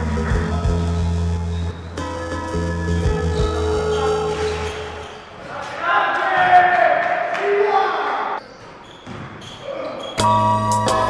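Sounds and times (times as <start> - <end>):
loud music: 0.0 - 4.4, 10.2 - 11.0.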